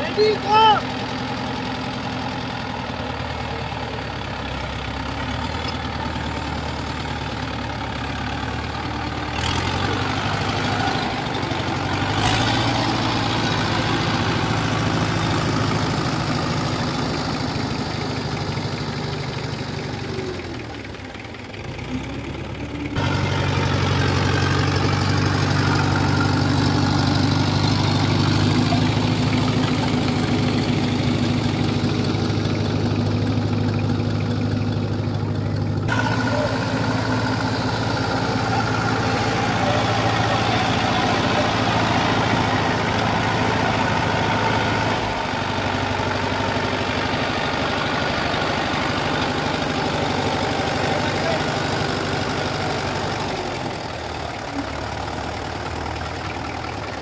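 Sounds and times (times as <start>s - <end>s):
diesel tractor engines running: 0.0s - 57.0s.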